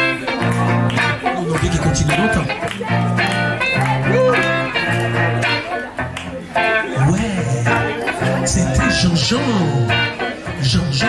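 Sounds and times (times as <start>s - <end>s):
bass guitar notes: 0.0s - 11.0s
electric guitar lead: 0.0s - 11.0s.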